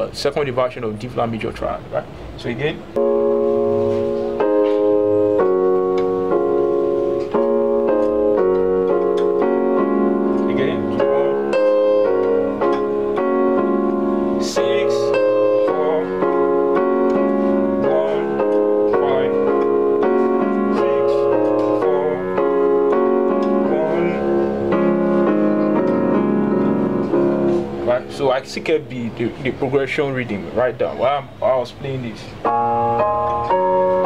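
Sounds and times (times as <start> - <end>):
electronic keyboard playing chords: 2.8 - 30.7, 32.3 - 34.0.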